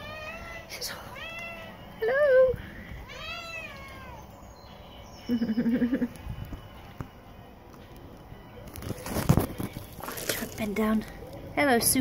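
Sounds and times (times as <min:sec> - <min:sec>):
cat meowing: 0:00.0 - 0:01.8, 0:03.0 - 0:04.3.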